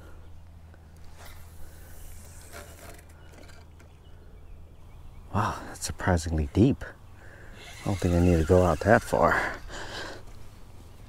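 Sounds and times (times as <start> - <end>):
low steady hum: 0.0 - 11.0
fishing rod and reel rustles and clicks: 0.8 - 4.1, 6.0 - 11.0.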